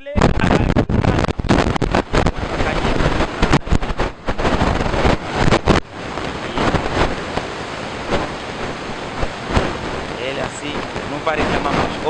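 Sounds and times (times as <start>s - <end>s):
microphone handling knocks: 0.0s - 10.0s
rough rushing wind noise: 0.0s - 12.0s.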